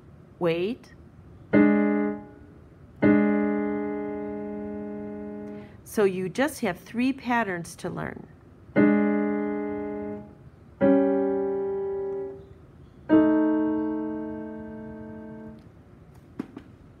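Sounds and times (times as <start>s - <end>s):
piano chords: 1.5s - 5.7s, 8.7s - 15.7s.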